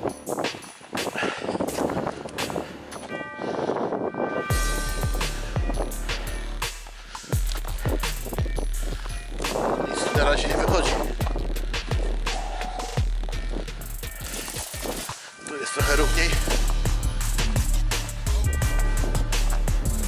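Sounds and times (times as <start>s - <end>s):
wind rumbling on microphone: 0.0s - 6.5s, 7.3s - 15.1s
footsteps crunching on frozen soil: 4.6s - 17.0s.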